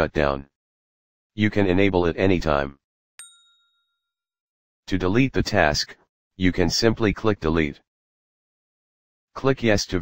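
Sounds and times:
bright bell ding: 0:03.2 - 0:04.0.

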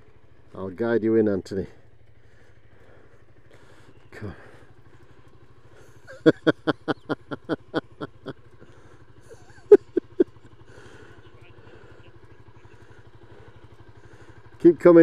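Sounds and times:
motorbike engine idling: 0:00.0 - 0:15.0
person laughing: 0:05.9 - 0:08.4, 0:09.2 - 0:10.9.

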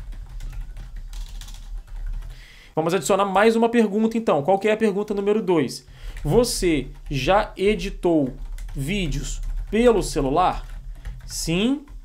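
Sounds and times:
typing on computer keyboard: 0:00.0 - 0:02.5, 0:06.0 - 0:12.0.

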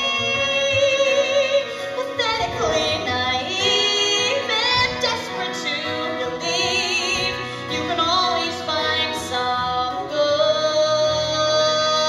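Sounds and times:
woman singing with vibrato: 0:00.0 - 0:12.0.

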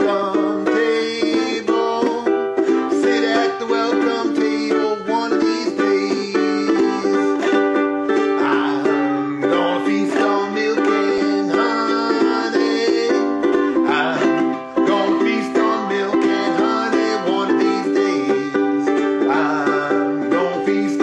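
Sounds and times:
ukulele strummed chords: 0:00.0 - 0:21.0.

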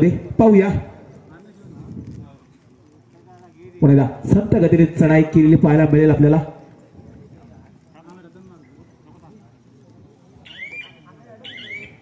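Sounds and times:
faint voices of players and spectators: 0:00.0 - 0:12.0.

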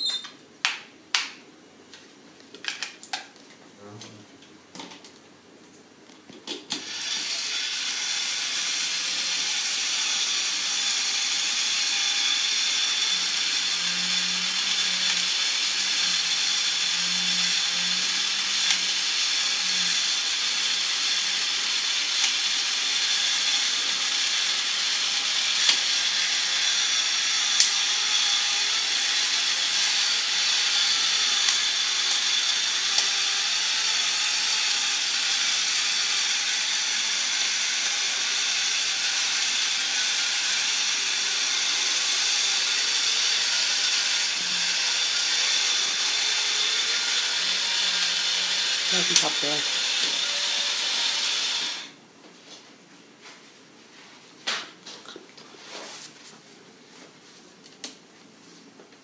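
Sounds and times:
can opener motor whir: 0:06.7 - 0:52.0.

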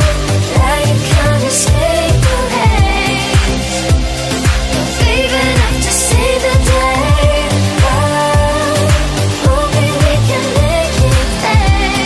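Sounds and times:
person singing: 0:00.0 - 0:04.0, 0:04.7 - 0:12.0
pop song with kick drum: 0:00.0 - 0:12.0.

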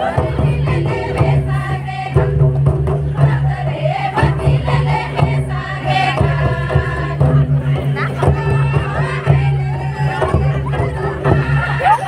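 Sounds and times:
barrel drums beating: 0:00.0 - 0:12.0
group singing folk song: 0:00.0 - 0:12.0.

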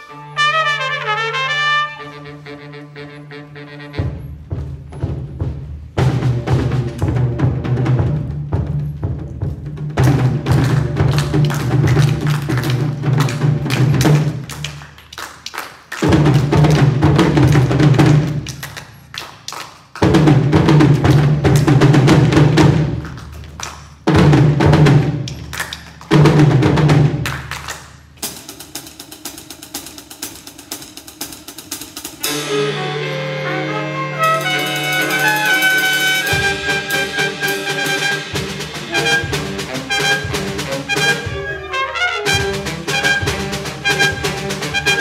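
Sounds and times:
wind ensemble playing: 0:00.0 - 0:04.5, 0:32.2 - 0:45.0
drum hits: 0:04.0 - 0:14.6, 0:20.0 - 0:23.1, 0:28.2 - 0:41.6, 0:42.2 - 0:45.0.

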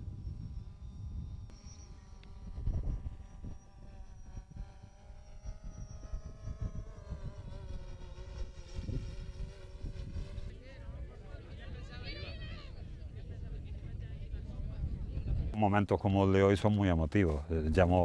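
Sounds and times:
engine hum: 0:00.0 - 0:10.5.

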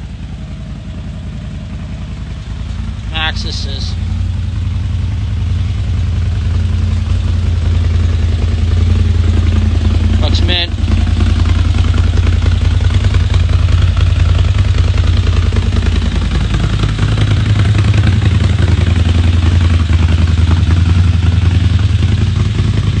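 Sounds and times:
engine idling: 0:00.0 - 0:23.0.

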